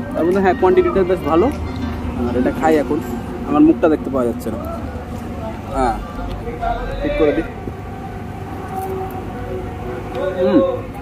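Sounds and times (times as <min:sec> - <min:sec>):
passing vehicle rumble: 0:00.0 - 0:11.0
faint droning tone: 0:00.6 - 0:11.0.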